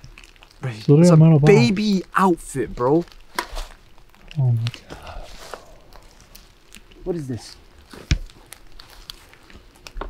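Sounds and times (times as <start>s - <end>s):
objects being handled: 3.0s - 10.0s.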